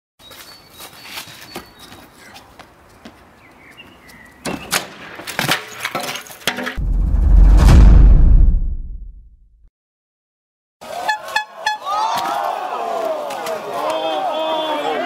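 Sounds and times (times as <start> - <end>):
deep boom title sting: 6.8 - 9.4.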